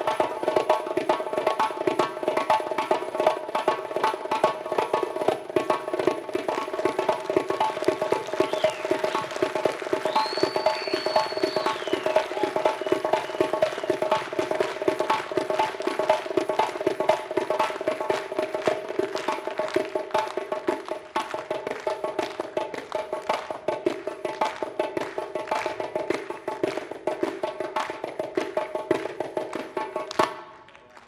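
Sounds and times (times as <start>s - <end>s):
frame drum played by hand: 0.0s - 30.4s
high whistled note: 8.4s - 9.2s, 10.0s - 14.2s.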